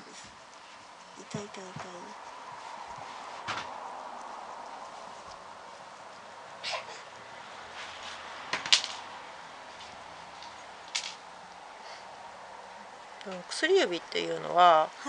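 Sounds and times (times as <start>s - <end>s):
hand handling noises: 9.7s - 11.6s.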